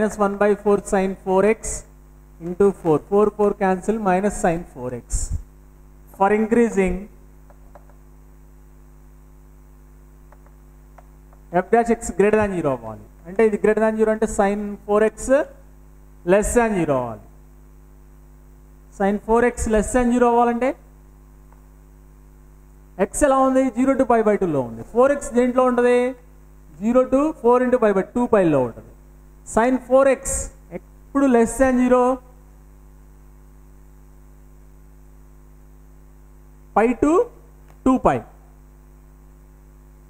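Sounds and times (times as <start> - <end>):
man speaking: 0.0 - 5.4, 6.1 - 7.1, 11.5 - 15.6, 16.2 - 17.3, 18.9 - 20.8, 23.0 - 28.9, 29.5 - 32.3, 36.8 - 38.5
electrical mains hum: 0.0 - 40.0
man's voice: 11.5 - 15.5.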